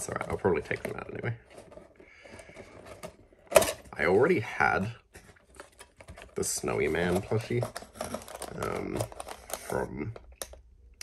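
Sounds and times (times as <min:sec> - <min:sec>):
cardboard box handling: 0:05.2 - 0:09.4.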